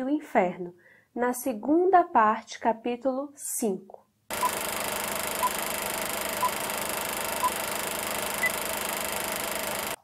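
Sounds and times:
short beeps: 5.4s - 5.6s, 6.4s - 6.6s, 7.4s - 7.6s, 8.3s - 8.7s.

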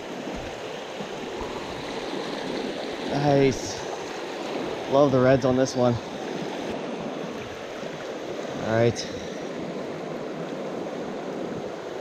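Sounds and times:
stream rushing over rocks: 0.0s - 12.0s.

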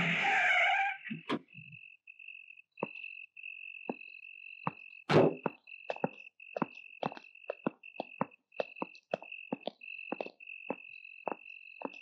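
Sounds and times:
crickets trilling: 0.1s - 12.0s.

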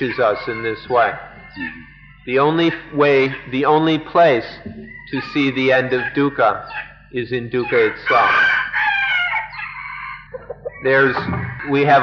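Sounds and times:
rooster crowing: 0.0s - 3.5s, 4.8s - 6.9s, 7.6s - 12.0s.

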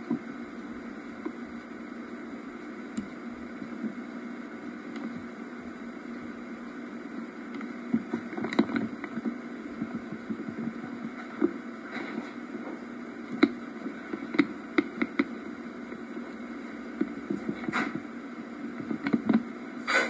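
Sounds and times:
videotape hiss and hum: 0.0s - 20.0s.

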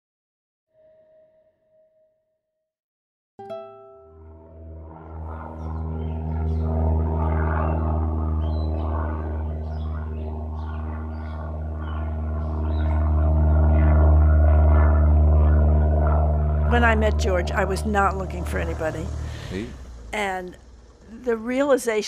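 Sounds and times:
propeller plane engine drone: 3.8s - 22.0s.

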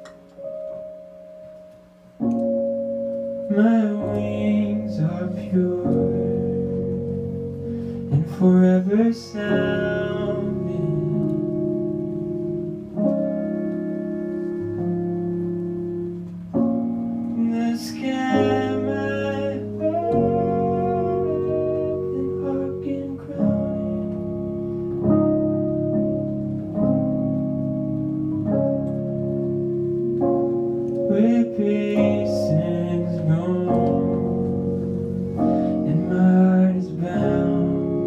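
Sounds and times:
sustained keyboard chords: 0.0s - 38.0s.

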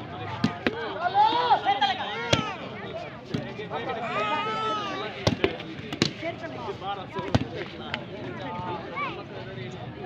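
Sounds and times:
people shouting: 1.2s - 2.7s.

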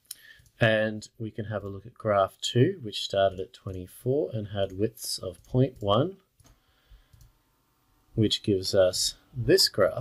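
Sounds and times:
computer mouse clicks: 5.4s - 7.4s.

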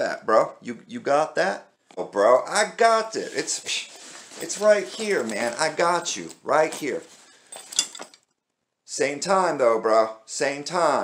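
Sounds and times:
fabric bag rustling: 3.1s - 8.2s.

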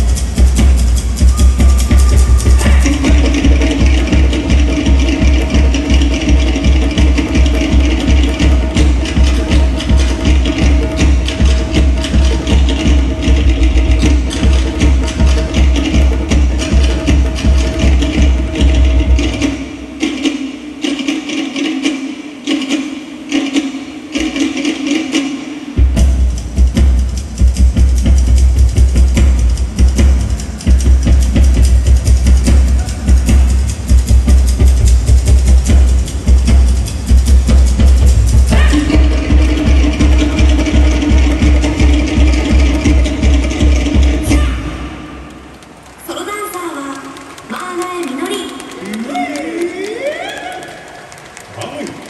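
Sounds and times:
drum-driven dance music: 0.0s - 51.9s
held low note: 1.1s - 4.8s.

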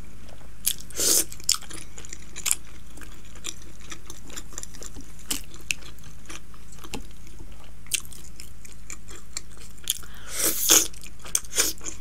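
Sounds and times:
person chewing and eating: 0.2s - 12.0s.

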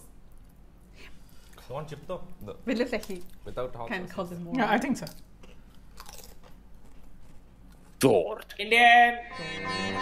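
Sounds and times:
chewing food: 4.9s - 8.0s.

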